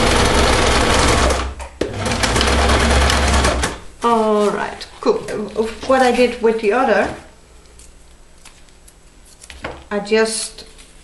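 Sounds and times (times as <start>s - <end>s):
sewing machine stitching: 0.0s - 3.8s.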